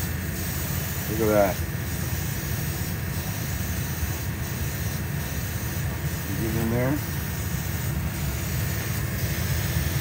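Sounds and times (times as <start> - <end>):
airbrush spraying hiss: 0.0 - 10.0
exhaust fan drone: 0.0 - 10.0.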